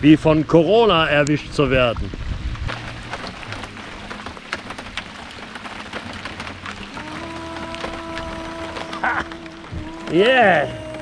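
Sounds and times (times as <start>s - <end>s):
heavy rain on a canoe: 0.0s - 11.0s.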